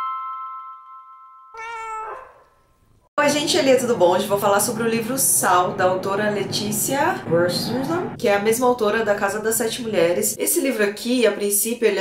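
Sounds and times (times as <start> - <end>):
chime note ringing: 0.0 - 1.9
cat meowing: 1.6 - 2.6.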